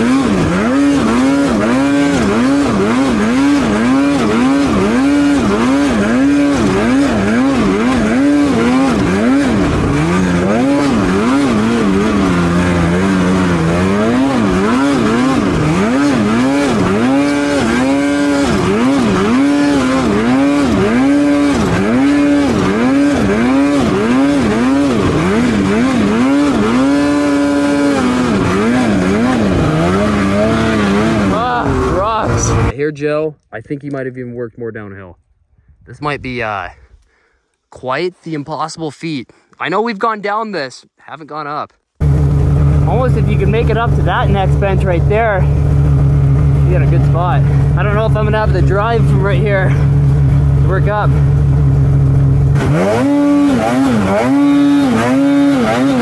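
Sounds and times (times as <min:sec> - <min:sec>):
snowmobile engine revving: 0:00.0 - 0:32.8, 0:42.0 - 0:56.0.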